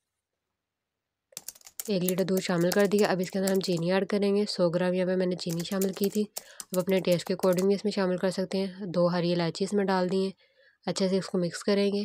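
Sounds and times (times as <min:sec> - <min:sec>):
computer keyboard typing clicks: 0:01.4 - 0:03.9, 0:05.4 - 0:07.7
woman speaking: 0:01.8 - 0:12.0.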